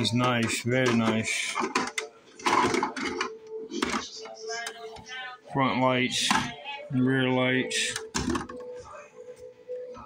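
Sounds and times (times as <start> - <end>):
plastic rustles and clicks: 0.0 - 4.4.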